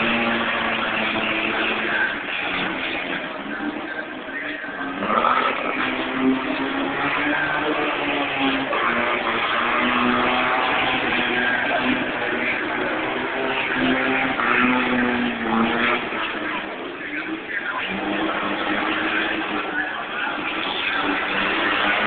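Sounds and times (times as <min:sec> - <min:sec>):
racing car engines: 0:00.0 - 0:22.0.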